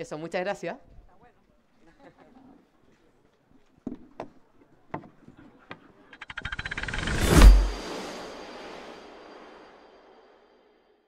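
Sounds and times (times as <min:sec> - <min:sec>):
rapid ticks: 0:06.2 - 0:07.2
rising whoosh: 0:06.5 - 0:10.8.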